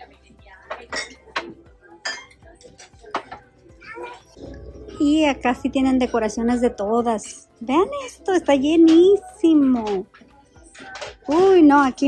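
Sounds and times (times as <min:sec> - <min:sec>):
ceramic dishes clinking: 0:00.7 - 0:03.6.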